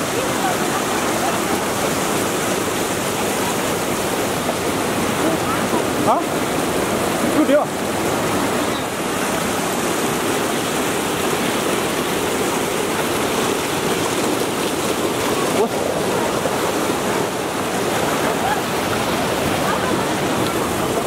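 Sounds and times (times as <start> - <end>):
river rushing over boulders: 0.0 - 21.0.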